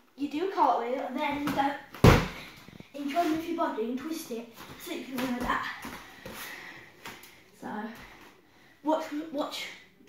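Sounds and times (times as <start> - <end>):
movement on gymnastics mat: 1.2 - 7.3.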